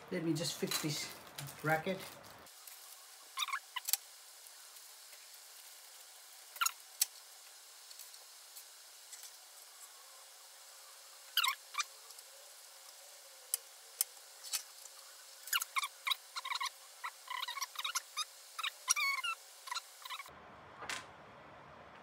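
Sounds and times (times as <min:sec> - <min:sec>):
plastic squeaking on plastic: 0:03.4 - 0:04.0, 0:06.6 - 0:06.8, 0:11.4 - 0:11.9, 0:15.4 - 0:20.3.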